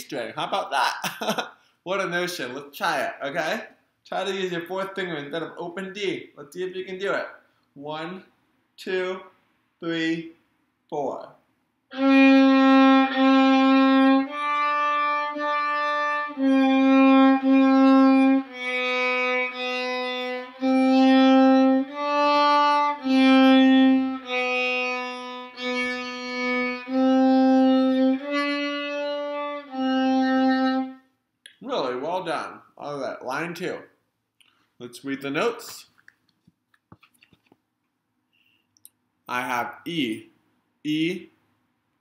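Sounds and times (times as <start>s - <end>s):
violin playing slow bowed notes: 11.9s - 31.0s.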